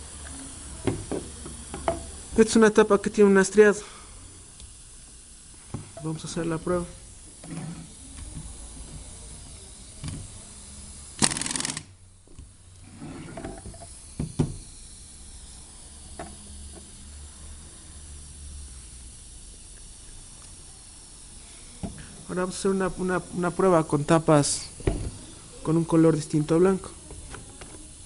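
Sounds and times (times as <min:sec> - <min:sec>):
compressed air hiss of capping tool: 0:00.0 - 0:12.0, 0:12.6 - 0:28.0.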